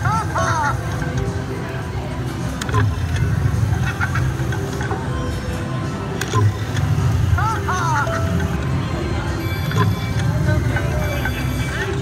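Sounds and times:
casino hum and chatter: 0.0 - 12.0
electronic chirping tones: 9.3 - 11.9
slot machine click: 9.4 - 12.0.

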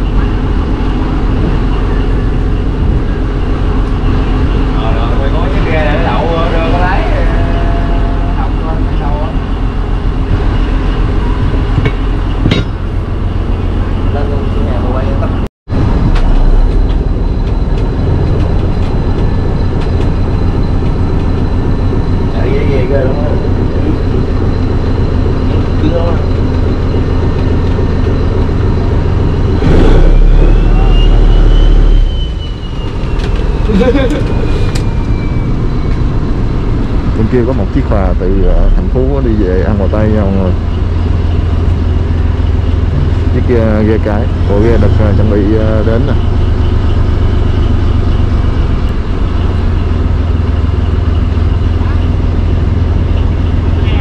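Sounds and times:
diesel engine low drone: 0.0 - 54.0.

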